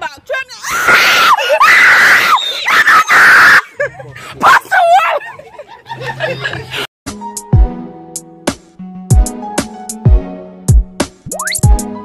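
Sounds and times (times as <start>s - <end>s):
person screaming: 0.6s - 3.6s.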